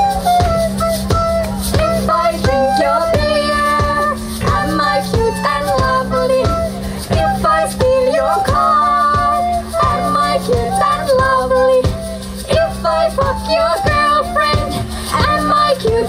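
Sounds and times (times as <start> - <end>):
bass: 0.0 - 16.0
live band playing: 0.0 - 16.0
recorder melody: 0.0 - 16.0.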